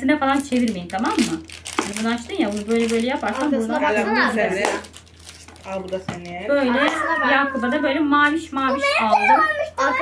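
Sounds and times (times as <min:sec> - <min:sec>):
plastic crinkling: 0:00.2 - 0:07.0
voices talking: 0:05.6 - 0:10.0.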